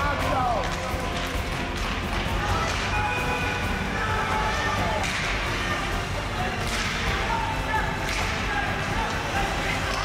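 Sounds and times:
spectators' voices: 0.0 - 10.0
skates scraping ice: 0.2 - 10.0.

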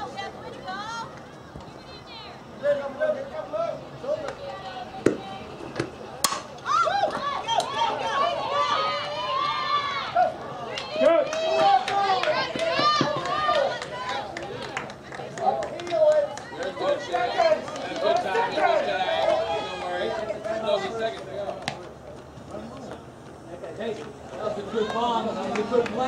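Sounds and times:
bat hitting ball crack: 6.2 - 6.5.

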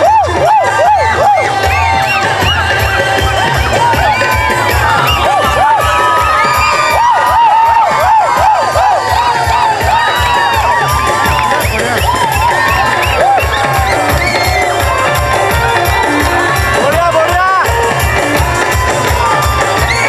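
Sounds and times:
crowd cheering and whooping: 0.0 - 20.0
music with low beat: 0.0 - 20.0.

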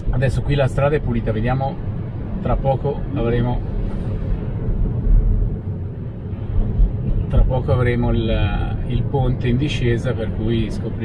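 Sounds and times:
tyre road rumble inside car: 0.0 - 11.0.

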